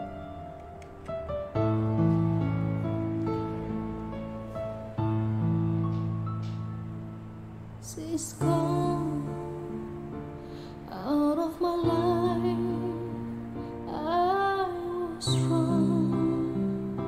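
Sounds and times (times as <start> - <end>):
sustained backing chords: 0.0 - 17.0
woman singing a slow ballad: 7.8 - 17.0.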